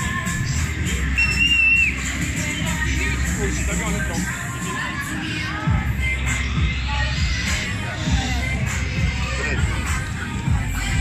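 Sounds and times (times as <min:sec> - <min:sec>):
loud amplified fairground music: 0:00.0 - 0:11.0.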